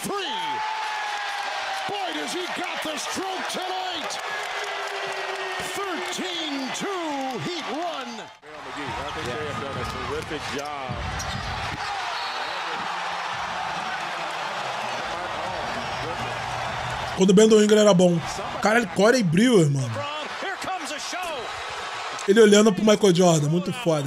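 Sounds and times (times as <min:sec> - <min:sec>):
arena crowd noise: 0:00.0 - 0:24.0
sneakers squeaking: 0:11.1 - 0:13.0.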